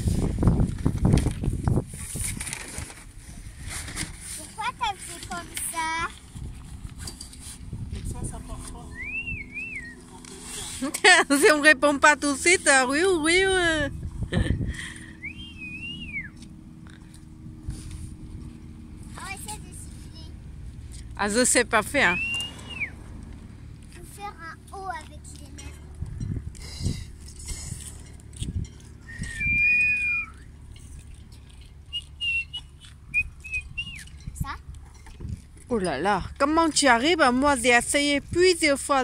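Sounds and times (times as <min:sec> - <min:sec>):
low background rumble: 0:00.0 - 0:39.0
whistled note: 0:08.9 - 0:10.0, 0:15.2 - 0:16.4, 0:22.1 - 0:23.0, 0:29.0 - 0:30.5, 0:31.9 - 0:34.1.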